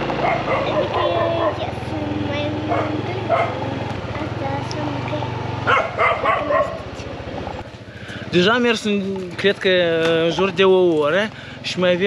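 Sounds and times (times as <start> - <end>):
dogs barking: 0.1 - 1.8, 2.6 - 3.7, 5.6 - 7.0.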